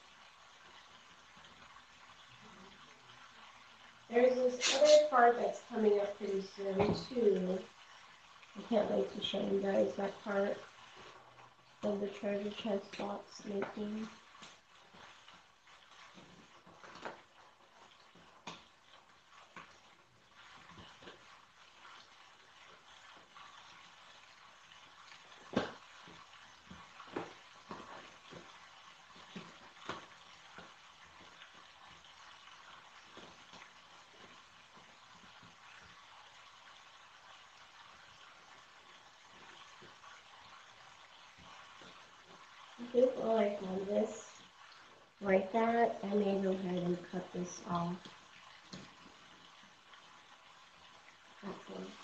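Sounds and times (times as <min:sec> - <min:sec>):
masking tape taps and crackles: 0:00.0 - 0:52.0.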